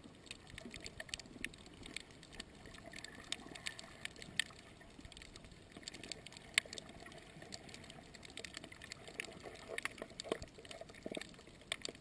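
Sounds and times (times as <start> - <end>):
underwater clicks and crackles: 0.0 - 12.0.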